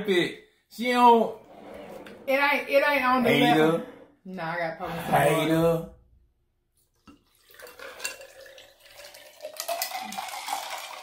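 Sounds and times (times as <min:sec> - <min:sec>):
liquid poured over ice: 0:07.1 - 0:11.0
ice clinking against glass: 0:07.4 - 0:11.0.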